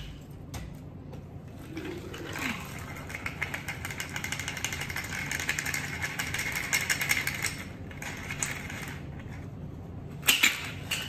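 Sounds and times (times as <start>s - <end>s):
ice rattling in cocktail shaker: 1.7s - 9.0s.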